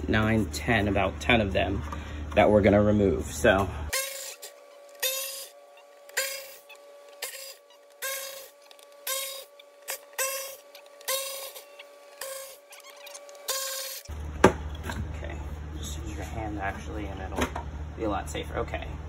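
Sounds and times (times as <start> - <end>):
power screwdriver whirring: 3.9 - 14.1.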